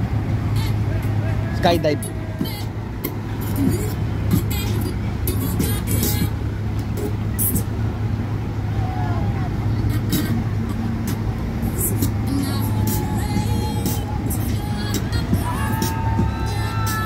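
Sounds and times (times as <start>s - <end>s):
boat engines droning: 0.0s - 17.0s
wind and water rushing: 6.3s - 17.0s.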